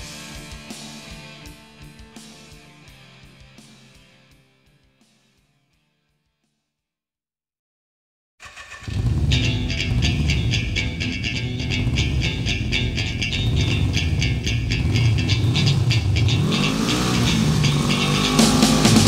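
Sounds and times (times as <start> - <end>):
heavy metal music: 0.0 - 4.3, 8.9 - 19.0
motor engine revving: 8.4 - 19.0.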